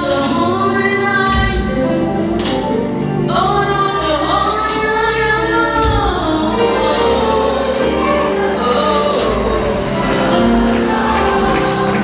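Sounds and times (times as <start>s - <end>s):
instrumental accompaniment: 0.0s - 12.0s
choir voices: 4.0s - 12.0s.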